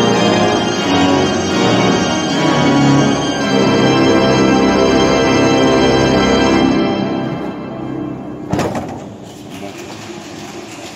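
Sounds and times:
pipe organ chord reverberating: 0.0 - 8.5.

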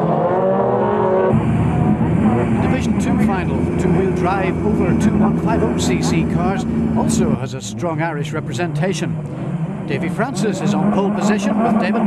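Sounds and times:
car engines waiting: 0.0 - 12.0
race car engines passing: 0.0 - 12.0.

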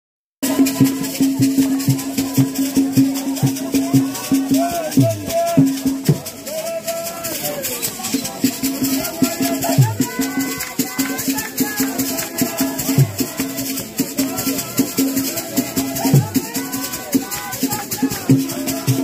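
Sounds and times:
percussion beat: 0.4 - 19.0
women singing church song: 9.2 - 19.0.

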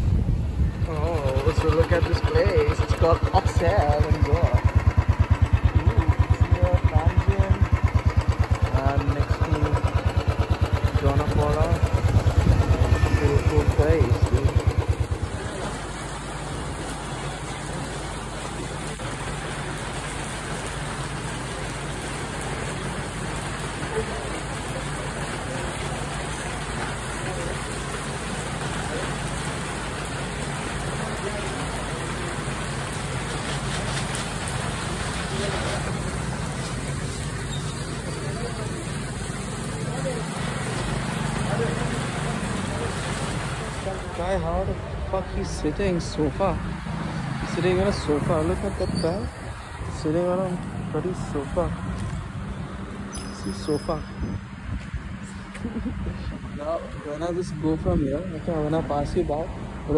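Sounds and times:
rain on wet pavement: 0.0 - 59.9.

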